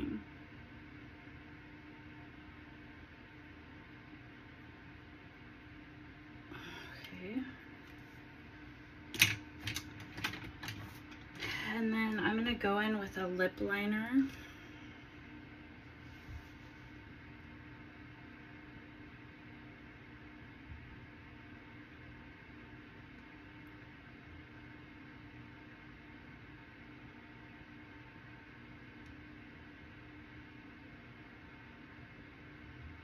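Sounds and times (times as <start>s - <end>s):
low electrical hum: 0.0s - 33.0s.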